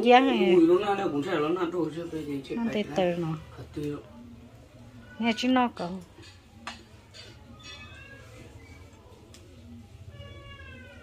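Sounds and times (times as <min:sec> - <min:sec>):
cat meowing: 0:07.6 - 0:08.6, 0:10.0 - 0:11.0.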